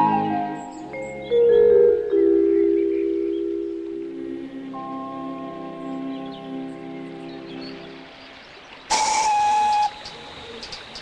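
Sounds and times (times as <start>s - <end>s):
soft background music: 0.0s - 11.0s
steam whistle blast: 8.9s - 10.1s
steam hissing: 8.9s - 10.4s.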